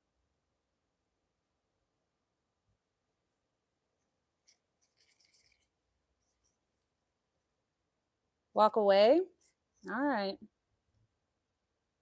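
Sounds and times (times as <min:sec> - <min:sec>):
faint scratchy rubbing: 0:04.0 - 0:07.6.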